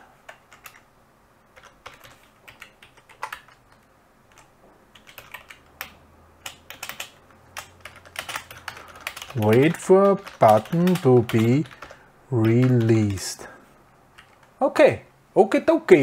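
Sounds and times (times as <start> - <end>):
typing on computer keyboard: 0.3 - 0.9, 1.5 - 13.2, 14.1 - 14.5.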